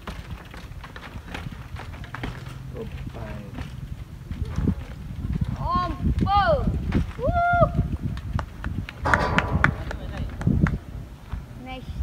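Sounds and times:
bike tyres knocking on steps: 0:00.0 - 0:11.5
low steady rumble: 0:09.0 - 0:12.0.

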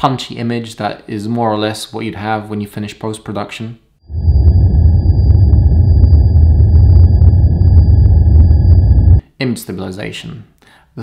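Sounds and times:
deep cinematic rumble: 0:04.0 - 0:09.2.

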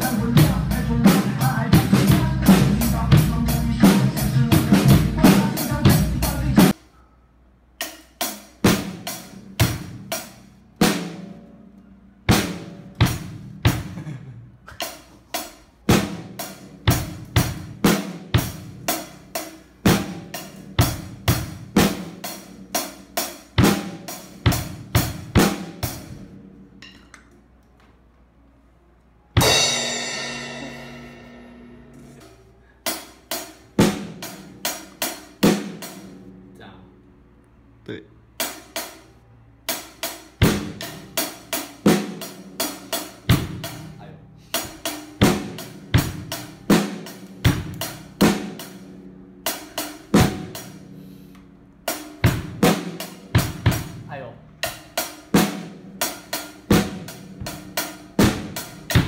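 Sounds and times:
drum and cymbal strokes: 0:14.8 - 0:26.3, 0:29.4 - 0:36.3, 0:38.4 - 0:59.0
cymbal crash ringing out: 0:29.4 - 0:32.3.

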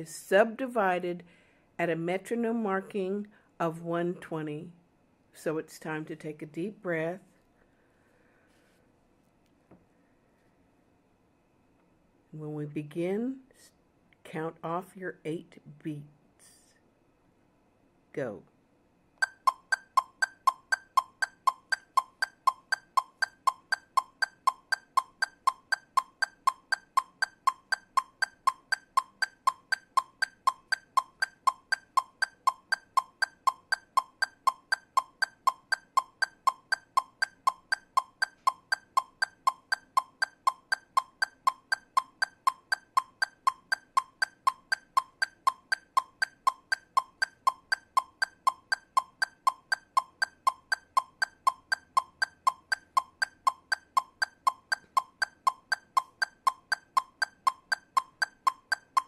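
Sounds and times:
metronome clicking: 0:19.2 - 0:59.0.

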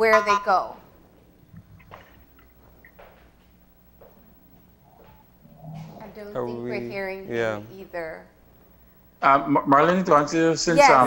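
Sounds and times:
woman speaking: 0:00.0 - 0:00.8, 0:05.9 - 0:08.3, 0:10.8 - 0:11.0
faint steady hum: 0:00.0 - 0:11.0.

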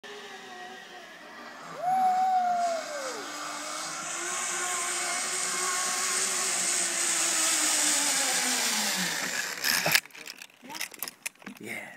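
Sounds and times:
zipline pulleys whirring on cable: 0:00.0 - 0:11.5
zipline trolley clacks: 0:01.8 - 0:11.7.

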